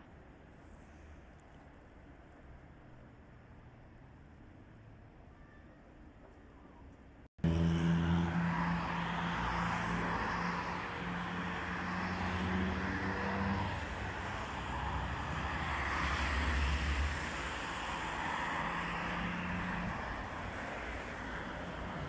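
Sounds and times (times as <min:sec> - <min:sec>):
cars passing: 0:07.4 - 0:22.0.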